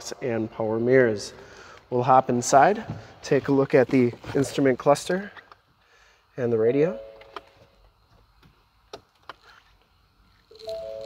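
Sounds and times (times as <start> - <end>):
dashboard chime: 6.8 - 7.4.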